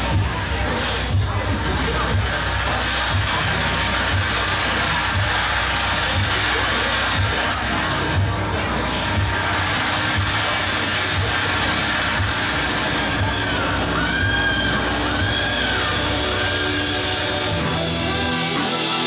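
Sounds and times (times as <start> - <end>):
live rock band playing: 6.7 - 19.0.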